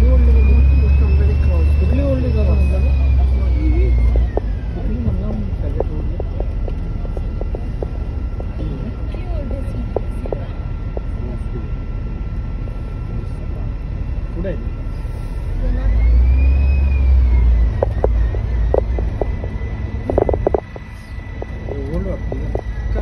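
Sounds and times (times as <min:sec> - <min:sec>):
bus engine and road rumble: 0:00.0 - 0:23.0
engine whine: 0:00.0 - 0:23.0.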